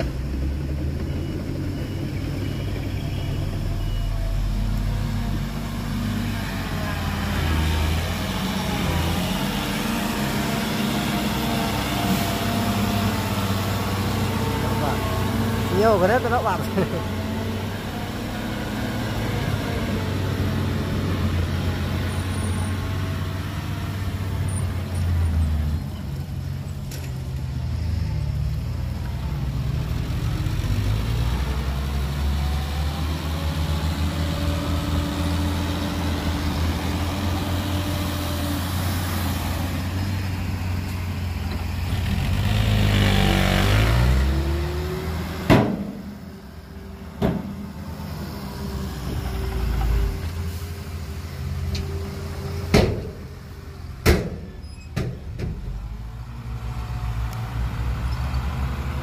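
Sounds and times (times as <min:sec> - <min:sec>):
diesel truck engines revving: 0:00.0 - 0:59.0.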